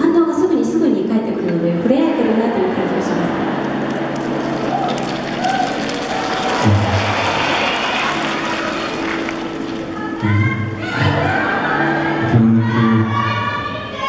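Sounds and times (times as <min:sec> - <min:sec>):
audience noise: 0:01.8 - 0:14.0
crowd rising calls: 0:02.0 - 0:14.0.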